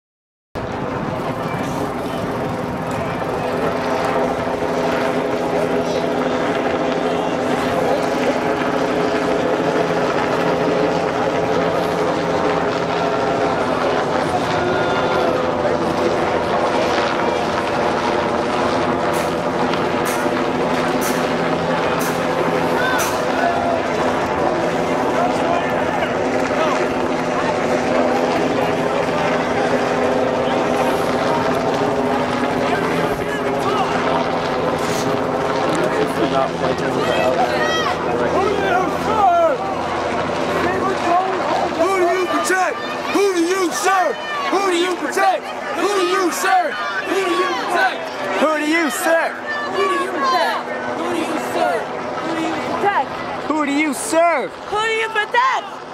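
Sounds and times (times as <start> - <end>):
crowd chatter: 0.6 - 55.9
helicopters buzzing overhead: 0.6 - 55.9.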